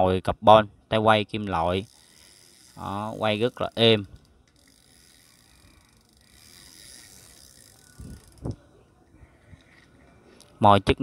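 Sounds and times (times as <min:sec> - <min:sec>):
fishing reel whirring: 0:01.6 - 0:08.6
small clicks: 0:03.6 - 0:08.6.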